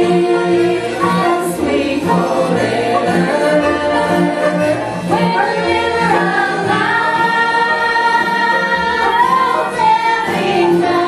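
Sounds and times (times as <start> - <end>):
voices singing together: 0.0 - 11.0
woman singing lead: 0.0 - 11.0.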